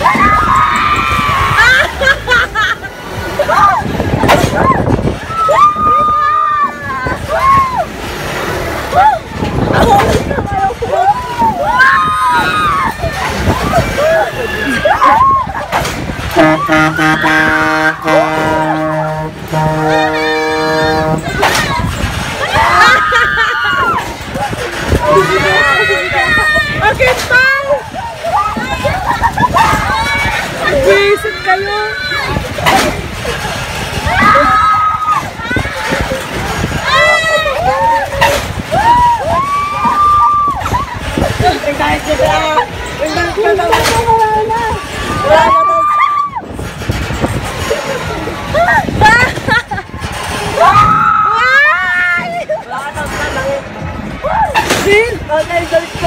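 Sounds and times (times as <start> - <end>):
riders screaming: 0.0 - 2.2, 10.9 - 15.8, 34.0 - 35.7, 36.8 - 41.0
riders yelling and shrieking: 0.0 - 46.6, 47.6 - 52.5
low rumbling noise: 0.0 - 56.0.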